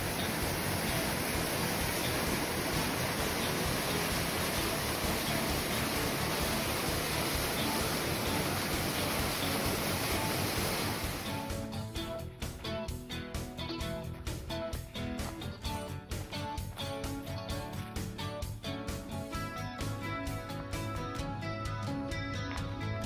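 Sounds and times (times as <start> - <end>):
stream rushing over rocks: 0.0 - 11.5
acoustic guitar music: 0.0 - 23.0.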